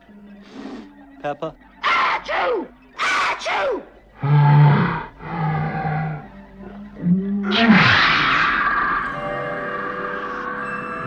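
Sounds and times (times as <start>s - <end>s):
low moaning voice-like tones: 4.2s - 11.0s.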